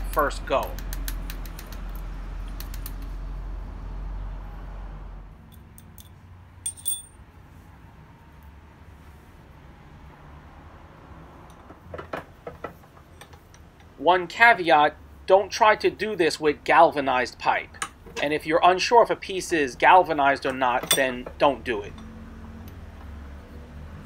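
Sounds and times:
steel pieces clinking against metal: 5.6 - 7.2, 20.8 - 21.3
short high metallic ring: 6.6 - 7.2.

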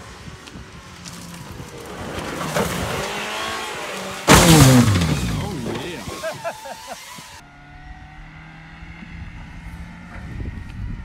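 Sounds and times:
car engine revving hard: 1.8 - 7.4
heavy impact of car landing: 4.2 - 6.2.

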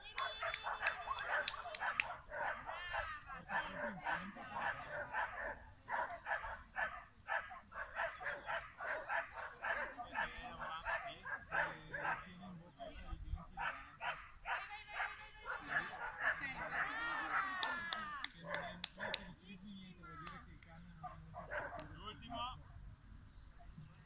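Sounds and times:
dog barking rapidly: 0.2 - 12.2, 13.6 - 17.5, 18.4 - 19.3, 21.0 - 21.9.

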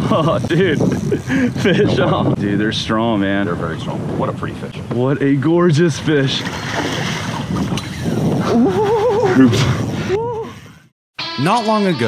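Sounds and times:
water noise: 0.0 - 10.9
wind: 0.0 - 12.0
man's excited wavering cry: 8.4 - 10.8.

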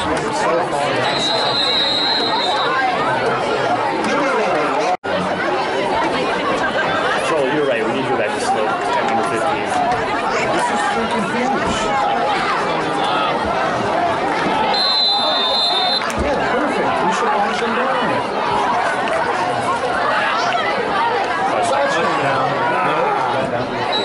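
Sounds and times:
spectators chatting: 0.0 - 24.0
referee's whistle: 1.0 - 2.8, 14.7 - 16.1.

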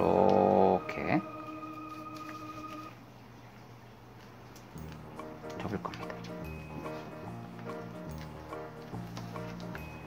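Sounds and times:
held notes of background music: 0.0 - 2.8, 4.8 - 10.0.

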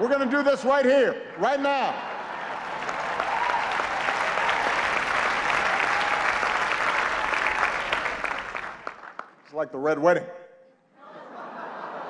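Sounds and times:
audience applauding: 1.5 - 9.4.

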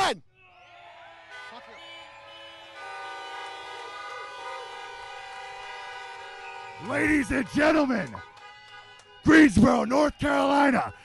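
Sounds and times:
many car horns honking: 1.2 - 11.0.

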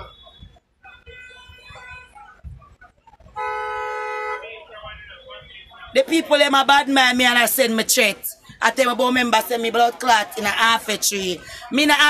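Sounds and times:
vehicle horn: 0.0 - 2.1, 3.4 - 4.5.

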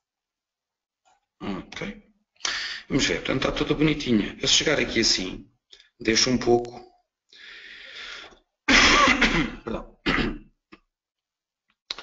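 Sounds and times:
man clearing his throat: 8.7 - 10.5.

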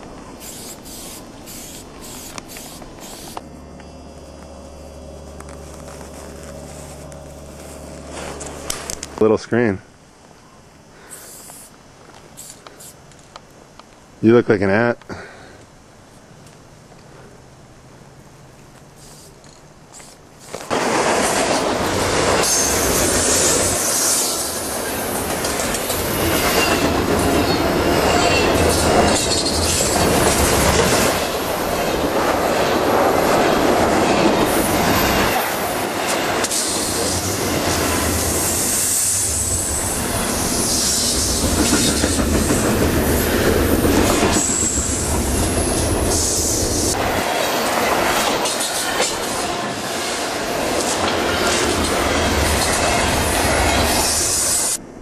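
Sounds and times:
train wheels clacking over rails: 20.7 - 38.2, 39.0 - 54.8.

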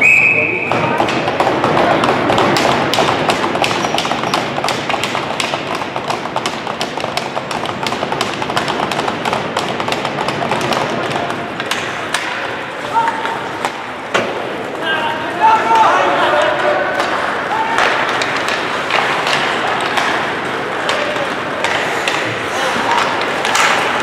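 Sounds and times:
skating on ice: 0.6 - 24.0
sticks and puck clacking on ice: 0.6 - 24.0.

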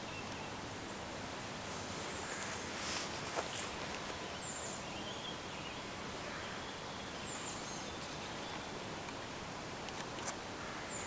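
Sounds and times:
light breeze in foliage: 0.0 - 11.0
faint bird chirp: 2.1 - 8.8.

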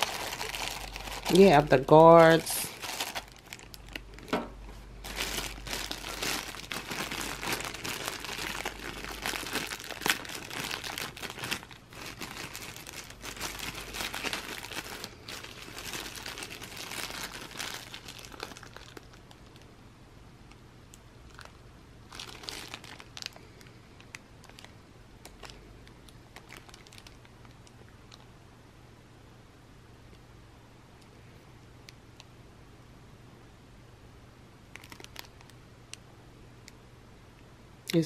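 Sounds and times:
plastic bag crinkling: 0.0 - 19.7, 21.3 - 28.3, 34.7 - 35.6.

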